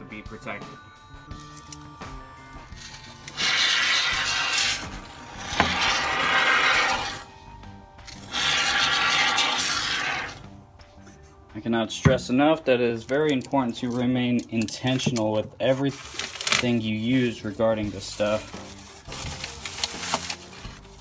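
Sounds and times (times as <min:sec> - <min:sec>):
background music: 0:00.0 - 0:21.0
aerosol foam spraying: 0:02.8 - 0:07.3, 0:08.1 - 0:10.4.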